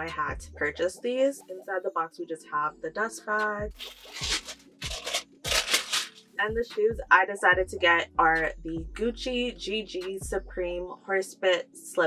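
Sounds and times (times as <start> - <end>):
fabric bag rustling: 3.7 - 6.4.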